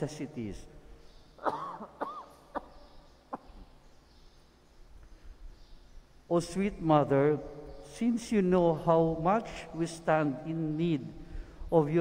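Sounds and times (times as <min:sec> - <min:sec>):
man coughing: 0:01.4 - 0:03.6.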